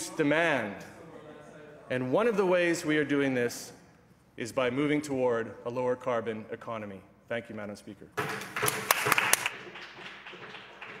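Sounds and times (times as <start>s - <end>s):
people applauding: 8.2s - 11.0s.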